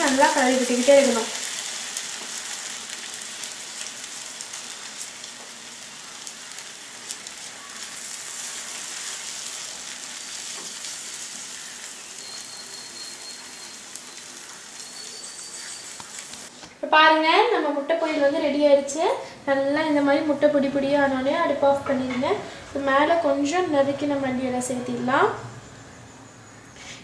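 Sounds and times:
eggs sizzling in a pan: 0:00.0 - 0:16.6.

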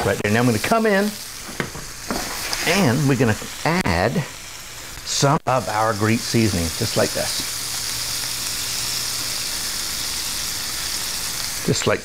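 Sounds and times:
potatoes sizzling in a skillet: 0:00.0 - 0:12.0.

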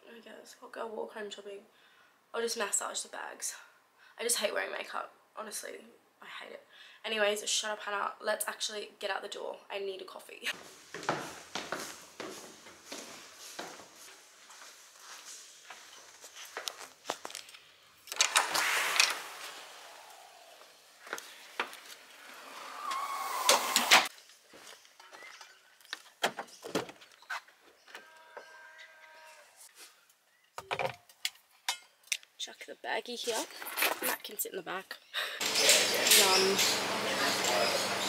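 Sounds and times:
footsteps on wooden stairs: 0:10.5 - 0:17.4
rushes of noise: 0:18.1 - 0:24.1.

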